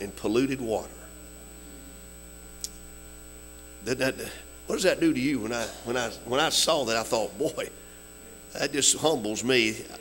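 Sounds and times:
electrical mains hum: 0.0s - 10.0s.

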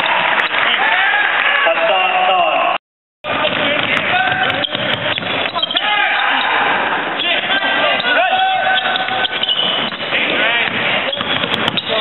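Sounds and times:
crowd voices and shouts: 0.0s - 12.0s
basketball bouncing on hardwood: 3.3s - 5.8s, 8.8s - 12.0s.

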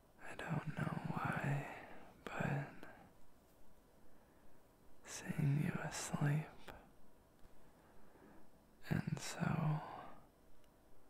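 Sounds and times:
man whispering: 0.2s - 3.2s, 5.0s - 7.0s, 8.8s - 10.3s.

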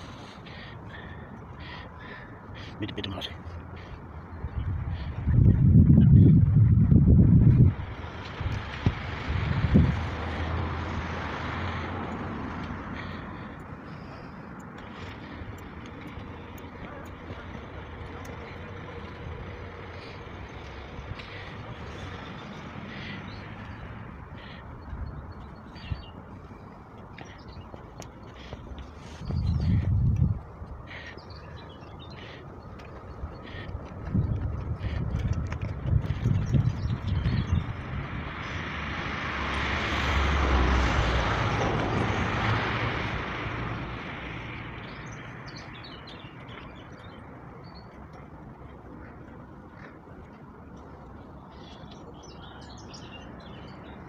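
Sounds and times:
wind buffeting microphone: 4.0s - 11.1s, 28.4s - 31.0s, 32.0s - 38.9s.

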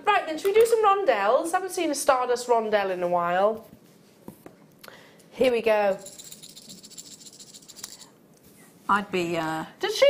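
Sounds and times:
beads rattling: 5.9s - 8.1s.

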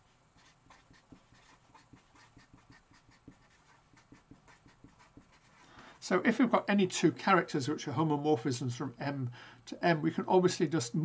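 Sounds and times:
marker scratching on paper: 0.4s - 5.6s.

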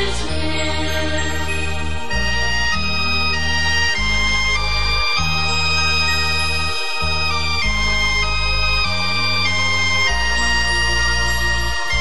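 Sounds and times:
bass line: 0.0s - 12.0s
organ-like keyboard chords: 0.0s - 12.0s.

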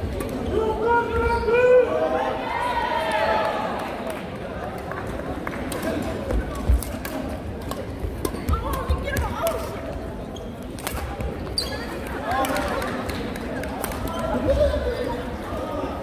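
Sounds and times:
rackets striking shuttlecock: 5.7s - 9.7s.

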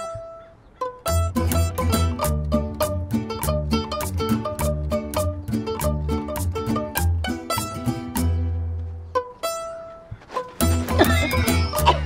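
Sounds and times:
lively plucked string music: 0.0s - 12.0s
steady bass line: 1.1s - 8.8s, 10.6s - 12.0s.

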